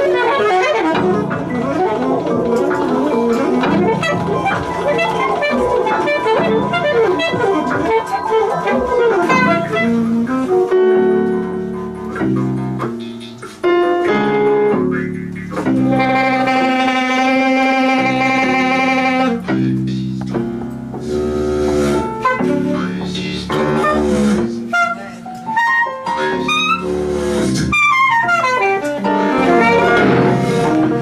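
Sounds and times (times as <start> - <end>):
saxophone improvising: 0.0 - 19.5, 23.6 - 31.0
other instruments playing: 0.0 - 31.0.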